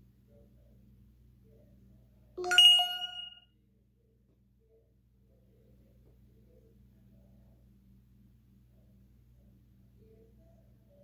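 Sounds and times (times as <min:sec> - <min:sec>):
bell-like ding: 0:02.4 - 0:03.4.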